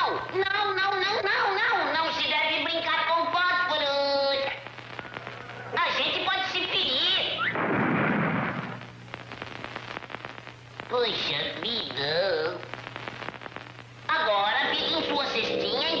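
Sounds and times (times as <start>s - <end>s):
cartoon crash: 7.4s - 8.8s.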